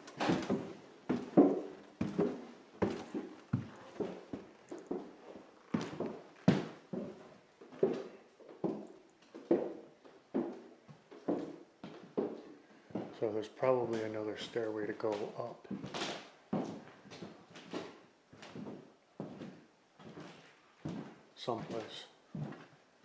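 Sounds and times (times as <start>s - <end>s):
footsteps on wooden stairs: 0.0s - 13.2s, 15.0s - 22.7s.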